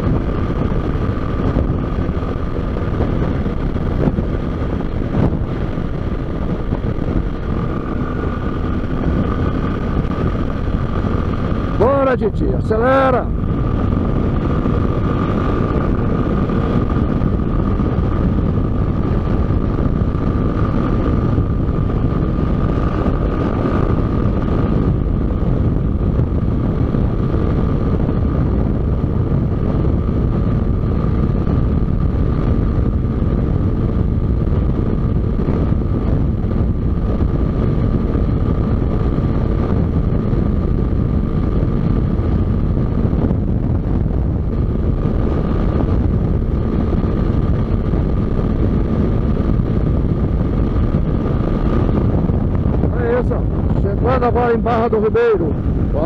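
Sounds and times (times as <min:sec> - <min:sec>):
motorcycle engine cruising: 0:00.0 - 0:56.0
steady high whine: 0:00.0 - 0:56.0
wind rush on microphone: 0:00.0 - 0:56.0.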